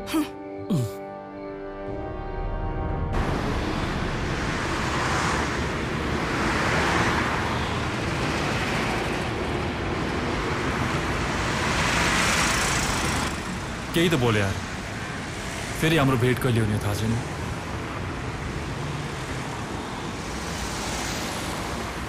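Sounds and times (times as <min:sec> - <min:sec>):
passing vehicles: 0:03.2 - 0:22.0.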